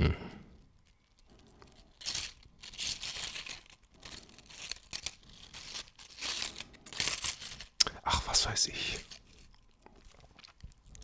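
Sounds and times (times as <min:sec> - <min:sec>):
tortilla chips rustling: 0:00.6 - 0:11.0.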